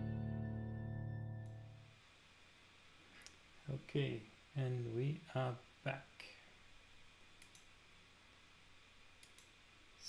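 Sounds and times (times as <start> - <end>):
faint clicks: 7.4 - 7.7, 9.2 - 9.6.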